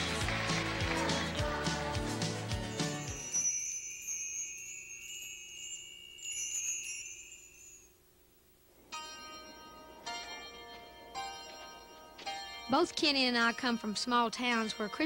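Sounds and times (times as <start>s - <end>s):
shimmering wind chimes: 2.6s - 8.0s
sustained bell-like notes: 8.9s - 15.0s.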